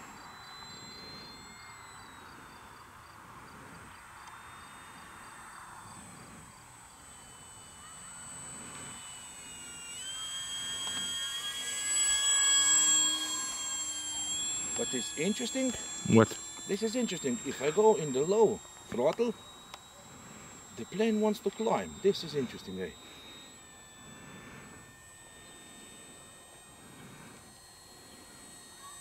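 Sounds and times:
model plane motor whine: 0:00.0 - 0:29.0.

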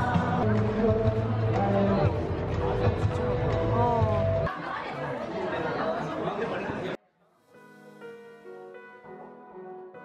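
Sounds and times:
music: 0:00.0 - 0:04.5, 0:07.2 - 0:10.0
diners chattering: 0:00.7 - 0:07.0.

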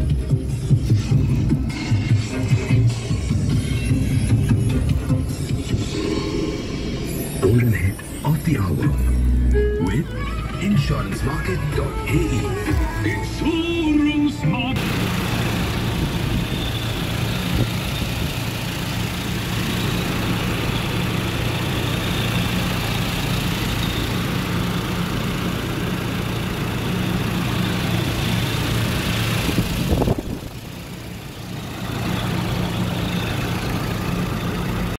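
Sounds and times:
car engine idling: 0:00.0 - 0:35.0.

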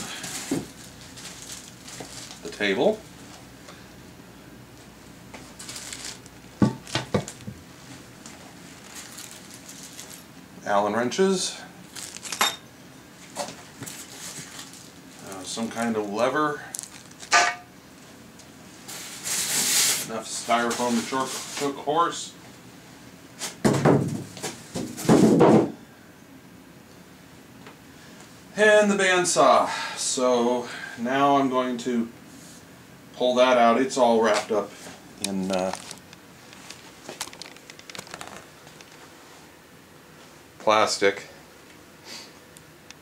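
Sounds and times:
packaging rustling: 0:00.0 - 0:02.6, 0:05.4 - 0:07.5, 0:08.2 - 0:10.3, 0:11.9 - 0:12.6, 0:13.7 - 0:16.0, 0:16.7 - 0:17.4, 0:35.2 - 0:39.2
styrofoam scraping and squeaking: 0:18.9 - 0:21.7, 0:36.6 - 0:38.5.

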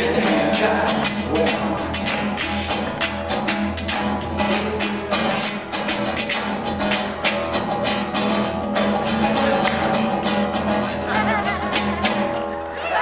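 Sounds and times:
acoustic guitar strumming: 0:00.0 - 0:13.0
hand slaps and claps: 0:05.4 - 0:07.4, 0:09.6 - 0:10.0.

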